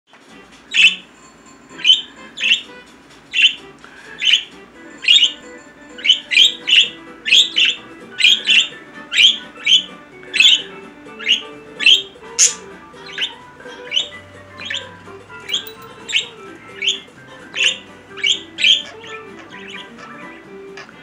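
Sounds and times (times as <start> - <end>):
budgerigar chirping: 0.7 - 1.1, 1.7 - 21.0.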